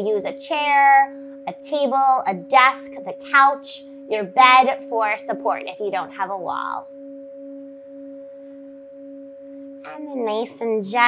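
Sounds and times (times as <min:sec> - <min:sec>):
singing bowl humming: 0:00.0 - 0:11.0.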